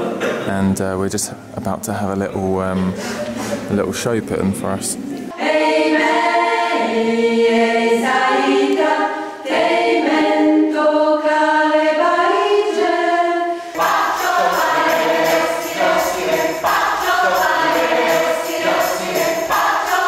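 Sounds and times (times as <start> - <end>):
mixed choir singing a cappella: 5.1 - 20.0.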